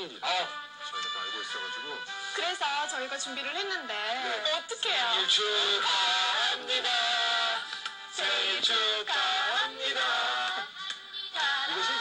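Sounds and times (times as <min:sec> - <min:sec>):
singing over music on television: 0:00.0 - 0:12.0.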